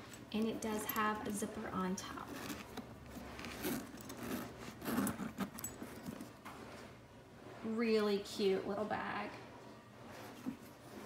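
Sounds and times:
leather rustling and knocking: 2.0 - 6.7
metal clasp clinks: 3.6 - 6.3.

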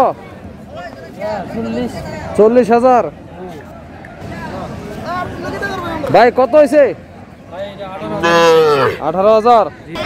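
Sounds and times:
calf mooing: 8.2 - 9.0.

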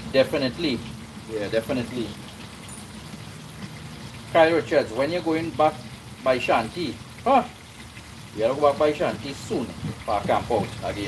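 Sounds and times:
fish sizzling in oil: 0.0 - 11.0.

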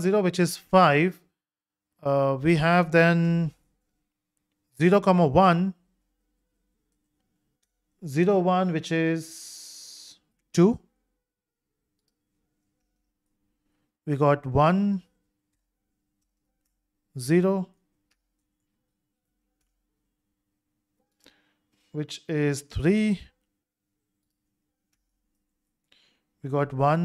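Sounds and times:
man speaking: 0.0 - 1.3, 2.0 - 3.6, 4.8 - 5.8, 8.0 - 10.9, 14.0 - 15.1, 17.2 - 17.8, 22.0 - 23.4, 26.4 - 27.0
faint steady hum: 0.0 - 27.0.

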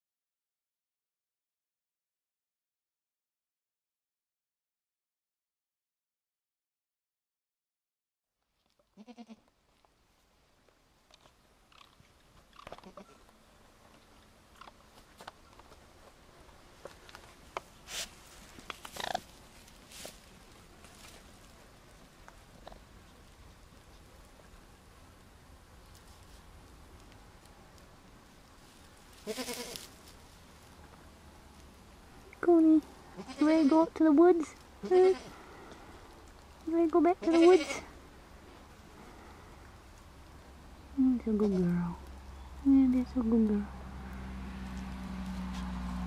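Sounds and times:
raccoon bleat-like call: 9.0 - 9.4, 29.2 - 29.8, 33.2 - 33.8, 37.2 - 37.9.

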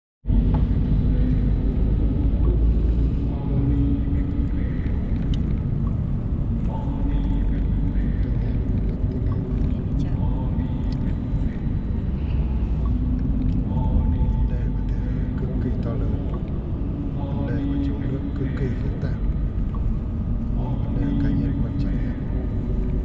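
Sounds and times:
car interior road and engine rumble: 0.3 - 23.0.

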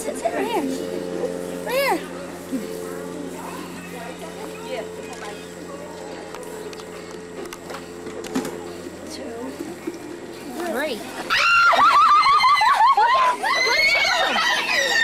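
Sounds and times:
faint steady hum: 0.0 - 15.0
children shrieking and shouting: 11.2 - 15.0.

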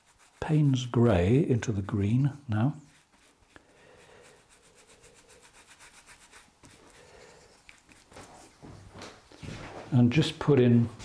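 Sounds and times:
paintbrush rubbing strokes: 0.0 - 9.4.

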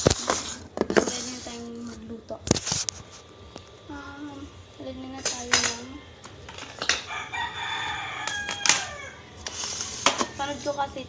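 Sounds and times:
rooster crowing: 5.8 - 9.5.

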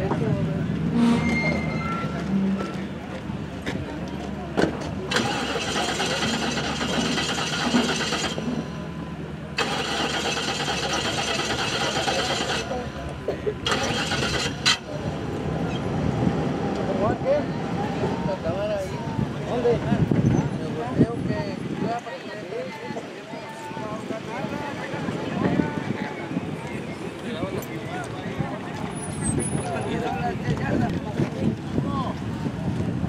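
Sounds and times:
indistinct voices: 0.0 - 32.2.

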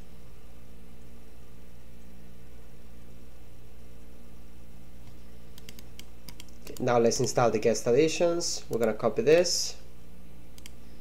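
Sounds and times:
low electrical hum: 0.0 - 11.0
mouse clicks: 5.0 - 7.4, 10.6 - 10.8
keyboard keystrokes: 5.6 - 7.4
man speaking: 6.7 - 9.9.

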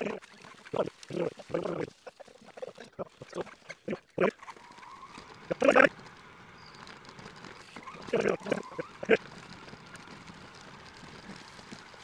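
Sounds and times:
squeaky sped-up voices: 0.0 - 11.9.

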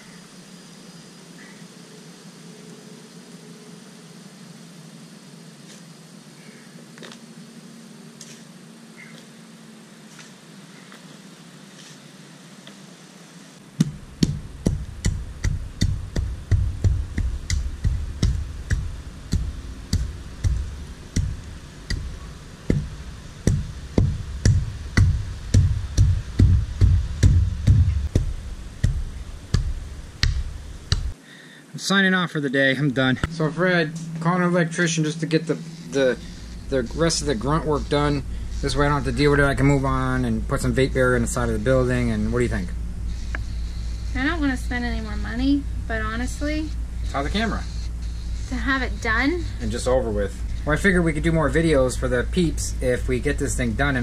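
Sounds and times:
hand tamper pounding dirt: 13.8 - 31.2.

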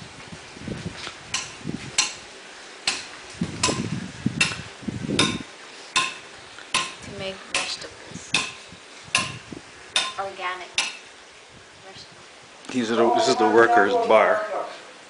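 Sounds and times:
hammer striking metal: 2.9 - 3.8, 5.2 - 5.4, 6.0 - 7.0, 8.4 - 8.6, 9.2 - 9.4, 10.0 - 10.2, 10.8 - 11.0.

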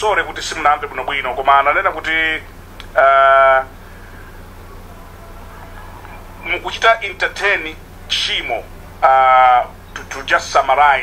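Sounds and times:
low steady hum: 0.0 - 11.0
man saying eh over phone: 3.0 - 3.7.

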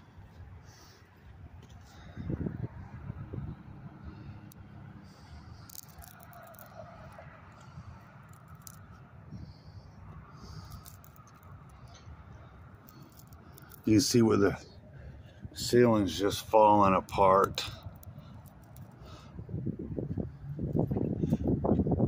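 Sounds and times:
low steady rumble: 0.0 - 22.0.

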